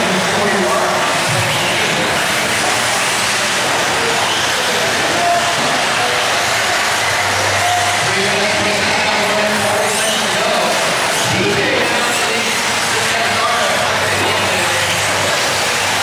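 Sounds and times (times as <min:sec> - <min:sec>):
indistinct voices: 0:00.0 - 0:16.0
rc car engines whining: 0:00.0 - 0:16.0.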